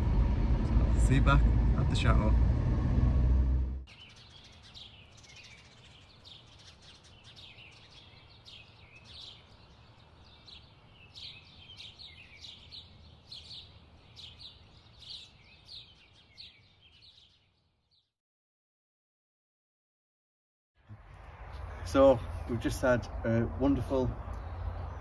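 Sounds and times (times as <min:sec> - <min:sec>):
low steady rumble: 0:00.0 - 0:03.9
birds chirping: 0:03.8 - 0:18.1, 0:21.4 - 0:25.0.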